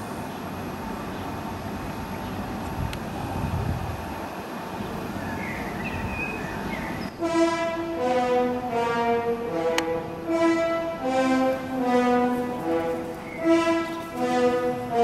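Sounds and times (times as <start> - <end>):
rushing outdoor background noise: 0.0 - 15.0
bowed strings music: 7.1 - 15.0.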